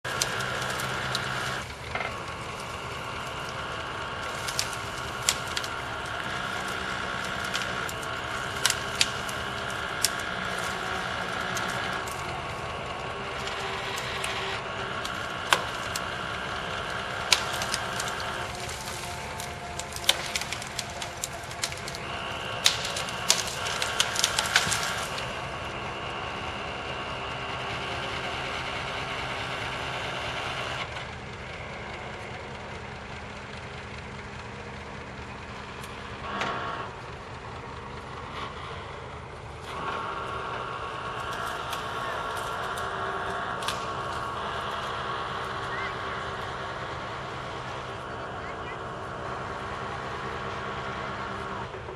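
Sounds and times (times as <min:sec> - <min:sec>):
wood snapping: 0:00.0 - 0:26.4, 0:38.2 - 0:48.7
machine engine running: 0:00.0 - 0:51.9.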